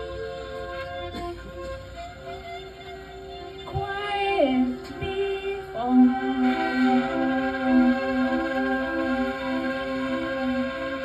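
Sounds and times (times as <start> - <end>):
bowed violin: 0.0 - 11.0
sustained drone notes: 4.4 - 11.0
low pulsing note: 4.5 - 11.0.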